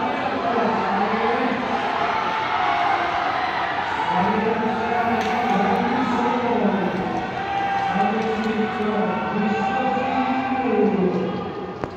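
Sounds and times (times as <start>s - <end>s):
crowd noise: 0.0s - 11.9s
man on public-address system: 4.1s - 7.1s.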